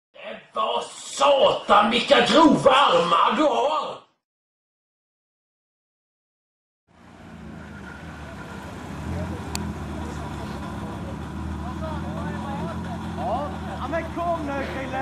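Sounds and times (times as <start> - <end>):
car engine idling: 6.9 - 15.0
voices calling out: 7.6 - 15.0.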